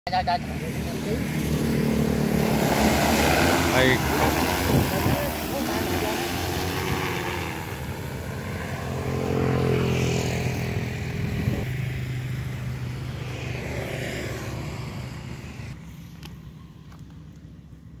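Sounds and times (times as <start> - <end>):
drone propellers humming: 0.3 - 16.8.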